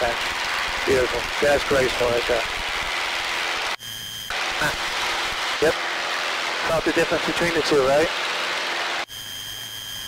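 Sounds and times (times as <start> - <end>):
airplane engine and propeller: 0.0 - 10.0.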